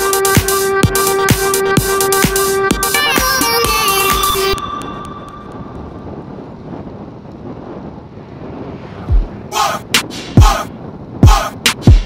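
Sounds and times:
road and tyre noise: 0.0s - 12.0s
wind on microphone: 0.0s - 12.0s.

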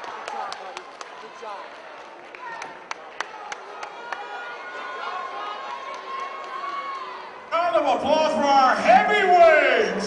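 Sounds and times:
crowd murmuring and chattering: 0.0s - 10.0s.

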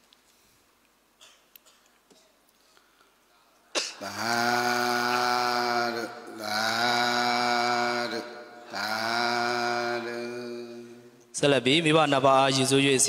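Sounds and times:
man chanting: 4.0s - 13.0s.

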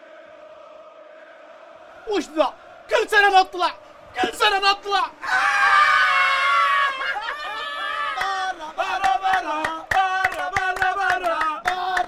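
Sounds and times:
men shrieking together: 5.2s - 8.5s.

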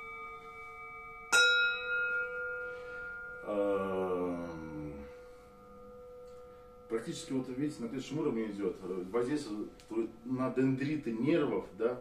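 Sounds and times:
bowl struck with wooden mallet: 0.0s - 3.5s
singing bowls ringing: 0.0s - 10.3s.

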